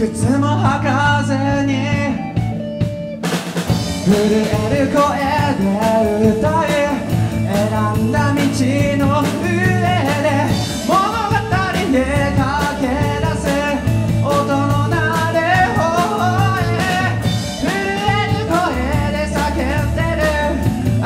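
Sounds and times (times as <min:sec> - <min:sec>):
male lead singer: 0:00.0 - 0:02.9, 0:03.7 - 0:21.0
drum kit: 0:00.0 - 0:21.0
electric bass: 0:00.0 - 0:21.0
electric guitars: 0:00.0 - 0:21.0.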